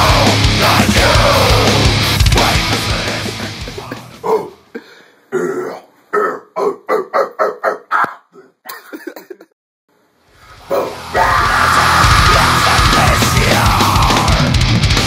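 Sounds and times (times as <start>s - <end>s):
heavy metal music: 0.0s - 4.7s, 10.5s - 15.0s
man growling metal vocals: 0.0s - 4.7s, 5.3s - 8.6s, 10.4s - 14.8s.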